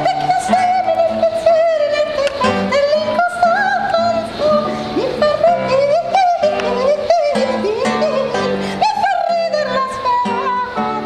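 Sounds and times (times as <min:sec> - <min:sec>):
high voice singing: 0:00.0 - 0:11.0
plucked acoustic guitar: 0:00.0 - 0:11.0.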